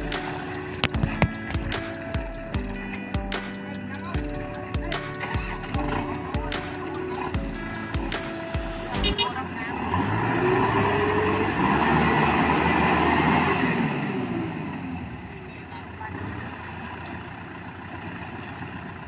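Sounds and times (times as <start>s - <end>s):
tractor engine revving: 0.0s - 15.3s.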